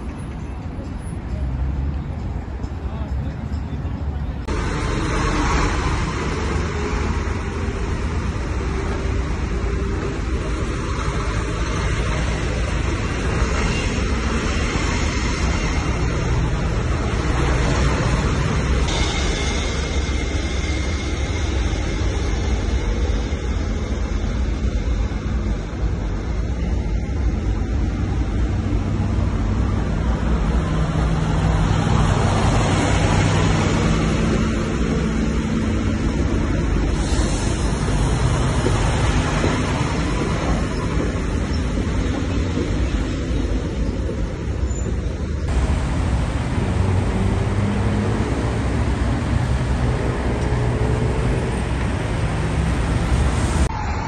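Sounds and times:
trucks driving past: 0:00.0 - 0:22.2, 0:24.9 - 0:54.0
truck engine passing close: 0:45.5 - 0:54.0.

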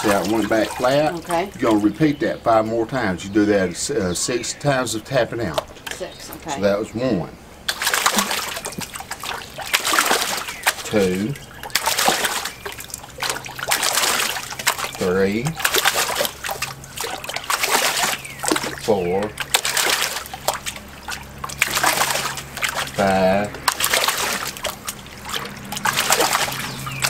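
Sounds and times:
screen slapping water surface: 0:00.0 - 0:02.2, 0:07.6 - 0:27.0
water splashing in a tub: 0:00.0 - 0:03.8, 0:04.5 - 0:27.0.

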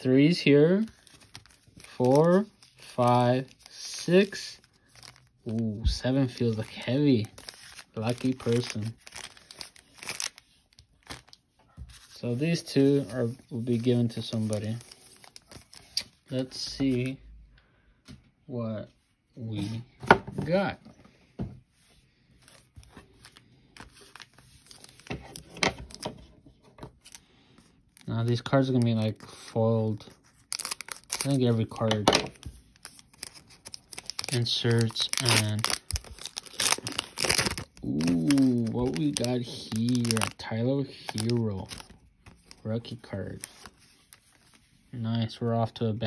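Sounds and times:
foil wrappers crinkling: 0:00.7 - 0:16.2, 0:29.9 - 0:44.7.

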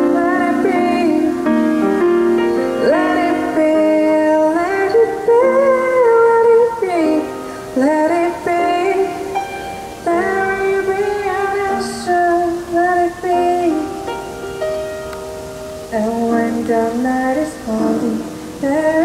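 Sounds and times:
woman singing a slow ballad: 0:00.0 - 0:14.4, 0:15.8 - 0:19.0
grand piano: 0:00.0 - 0:19.0.

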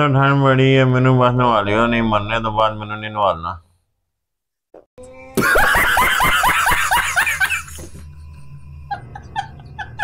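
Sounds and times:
man laughing hard: 0:05.4 - 0:08.2, 0:08.8 - 0:10.0.

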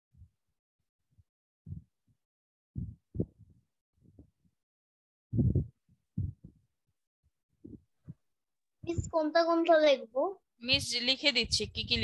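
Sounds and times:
faint muffled low thumps: 0:01.7 - 0:01.9, 0:02.8 - 0:04.3, 0:05.3 - 0:06.6, 0:08.8 - 0:09.3, 0:10.6 - 0:12.0.

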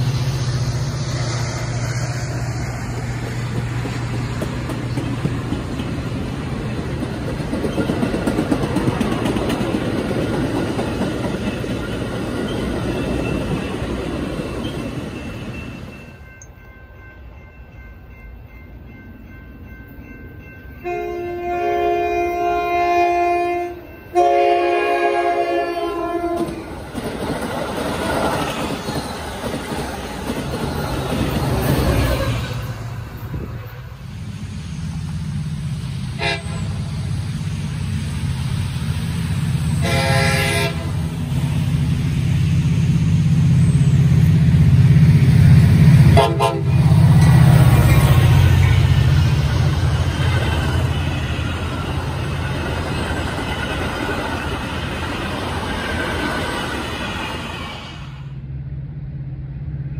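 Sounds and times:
diesel locomotive engine rumble: 0:00.0 - 0:59.9
train running: 0:00.0 - 0:59.9
locomotive air horn blasts: 0:20.8 - 0:26.6, 0:36.2 - 0:36.9, 0:39.8 - 0:41.0, 0:46.1 - 0:46.9.

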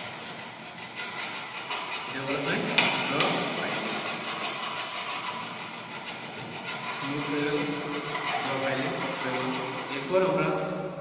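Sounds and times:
hand file rasping on metal: 0:00.0 - 0:10.4.

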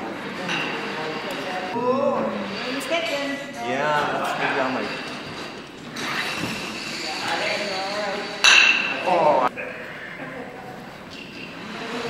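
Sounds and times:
quiet voices murmuring: 0:06.8 - 0:12.0.

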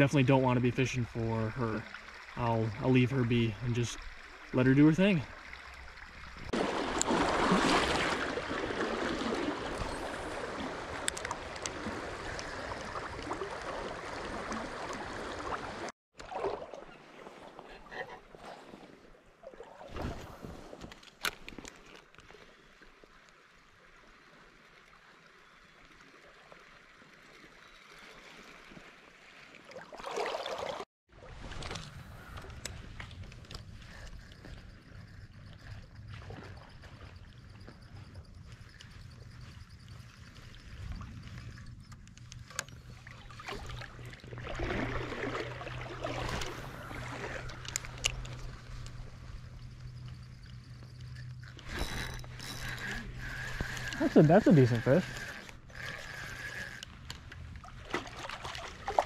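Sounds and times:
stream water gurgling: 0:00.0 - 0:20.8, 0:22.1 - 0:33.6, 0:42.5 - 0:49.7, 0:50.5 - 0:59.0.

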